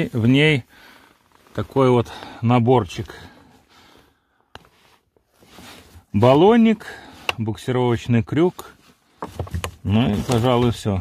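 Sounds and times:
faint rustling of tool kit: 0.0s - 11.0s.

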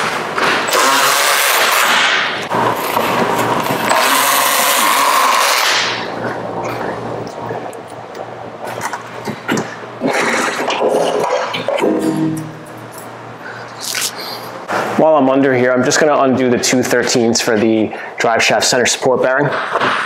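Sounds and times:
power ratchet whirring: 0.7s - 2.3s, 3.8s - 6.0s
low hum: 11.6s - 14.7s.

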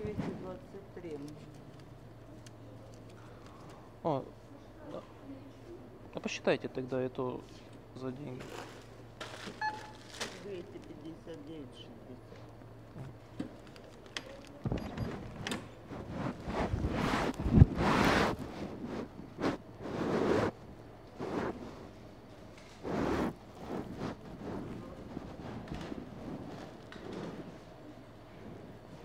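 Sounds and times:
rustling and handling noises: 7.4s - 29.0s.

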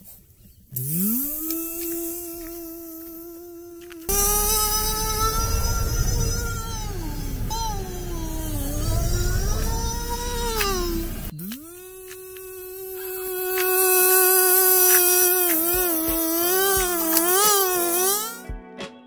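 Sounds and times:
high singing voice: 1.0s - 18.5s
bass and steady beat: 3.9s - 12.2s, 14.5s - 18.7s
low rumble: 4.1s - 11.3s.

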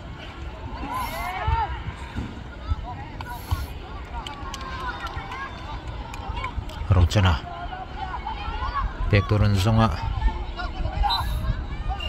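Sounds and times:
wind rumble on microphone: 4.5s - 12.0s.

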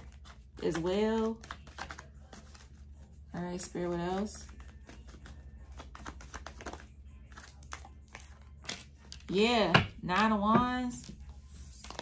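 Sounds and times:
cards shuffling: 0.0s - 9.3s, 11.0s - 12.0s.

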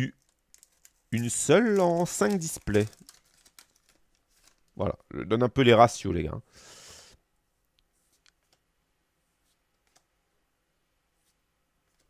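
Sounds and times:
trading cards clicking: 0.1s - 4.7s.

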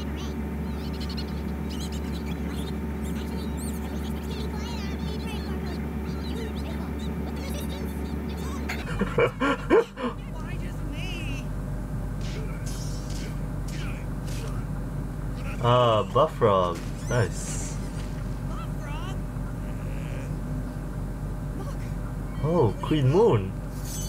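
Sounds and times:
quick pitched cries: 0.2s - 8.7s.

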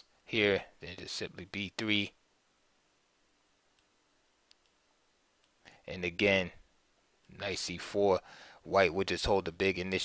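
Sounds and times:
computer mouse clicks: 3.7s - 4.8s.

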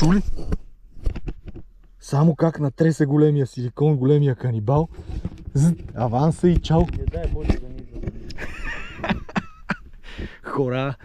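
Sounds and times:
camera handling knocks and rubs: 0.1s - 2.0s, 4.9s - 10.3s.

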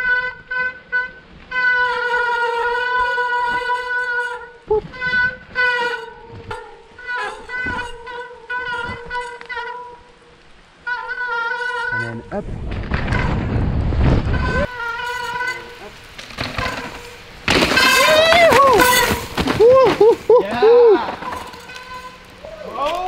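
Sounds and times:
disc brakes howling: 12.8s - 23.0s
tyres knocking over roots: 15.7s - 21.9s.

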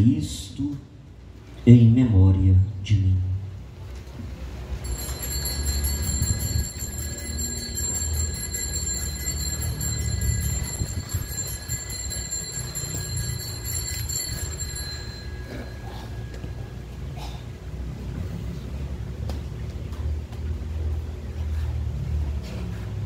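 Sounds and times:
small bells ringing: 4.8s - 17.7s.

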